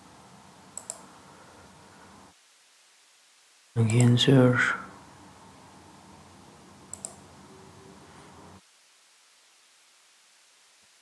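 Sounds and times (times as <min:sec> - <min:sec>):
faint steady hiss: 0:00.0 - 0:11.0
computer mouse clicks: 0:00.8 - 0:01.1, 0:06.9 - 0:07.2.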